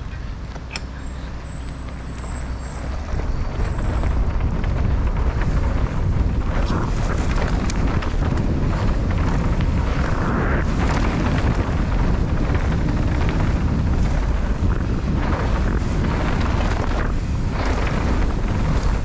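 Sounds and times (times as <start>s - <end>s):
bike tyre roar: 0.0s - 19.0s
wind buffeting microphone: 0.0s - 19.0s
bike knocks and rattles: 0.4s - 19.0s.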